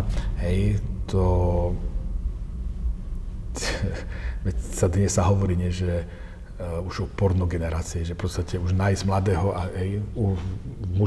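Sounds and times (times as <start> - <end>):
steady low hum: 0.0 - 11.0
person sharp breath: 4.0 - 4.5.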